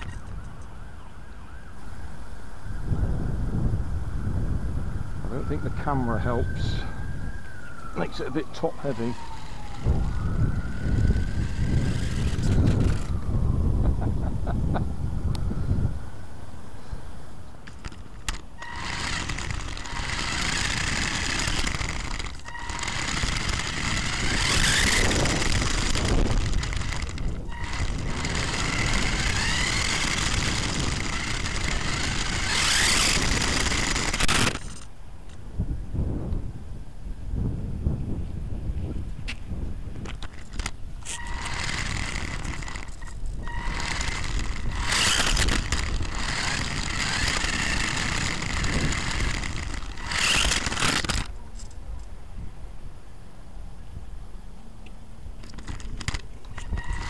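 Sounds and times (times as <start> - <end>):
electric motor whining: 0.0 - 0.3, 7.9 - 13.6, 17.7 - 34.9, 40.2 - 51.4, 55.4 - 57.0
rough rumble of tyres on tarmac: 8.7 - 13.4, 17.6 - 35.5, 38.6 - 51.7, 55.3 - 57.0.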